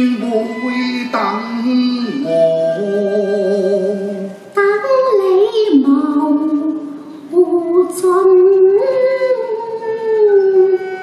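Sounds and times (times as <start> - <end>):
opera singing: 0.0 - 11.0.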